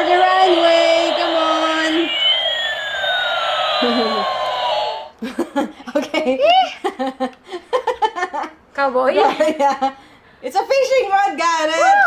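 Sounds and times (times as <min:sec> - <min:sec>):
toy airplane gliding tones: 0:00.0 - 0:05.1
toy wheels whirring: 0:00.0 - 0:05.1
child laughing: 0:03.8 - 0:04.3.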